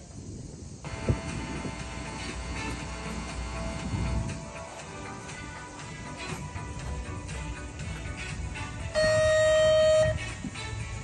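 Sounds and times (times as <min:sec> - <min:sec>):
loud horn or buzzer tone: 0:00.9 - 0:04.6, 0:09.0 - 0:10.3
background music: 0:00.9 - 0:11.0.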